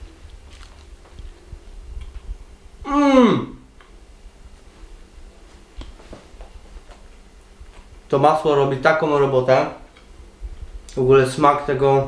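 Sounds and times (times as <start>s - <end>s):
crispy flatbread being chewed: 0.0s - 2.3s, 5.6s - 8.0s.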